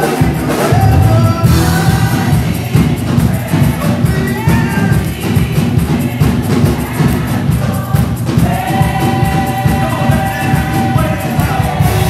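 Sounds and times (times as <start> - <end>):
gospel choir singing: 0.0 - 12.0
live church music: 0.0 - 12.0.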